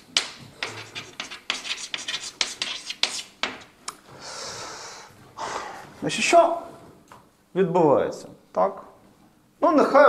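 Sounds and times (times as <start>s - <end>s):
chalk tapping and scratching: 0.0s - 3.8s.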